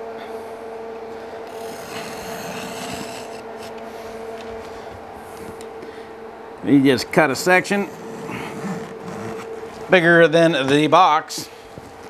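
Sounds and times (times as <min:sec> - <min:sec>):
background hum: 0:00.0 - 0:12.0
screen rubbing and scraping on wood: 0:01.5 - 0:03.8, 0:07.8 - 0:10.0.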